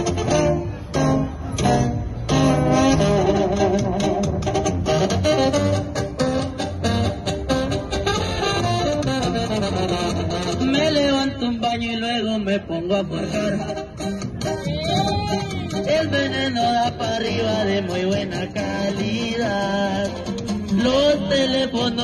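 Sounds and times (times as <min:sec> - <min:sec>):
guitars and bass playing: 0:00.0 - 0:22.0
man singing: 0:10.3 - 0:22.0.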